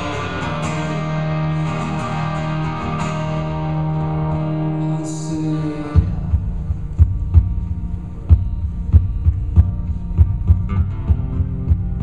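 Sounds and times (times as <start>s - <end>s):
acoustic guitar: 0.0s - 12.0s
deep percussive thumps: 6.0s - 12.0s.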